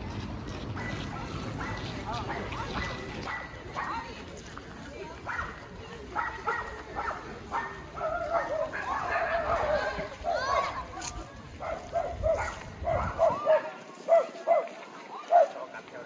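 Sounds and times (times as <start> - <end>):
people talking: 1.0 - 16.0.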